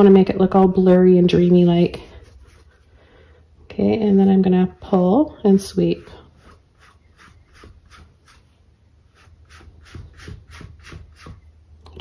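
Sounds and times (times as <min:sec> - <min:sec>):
brush swishing on canvas: 0:01.7 - 0:03.0, 0:05.7 - 0:11.4.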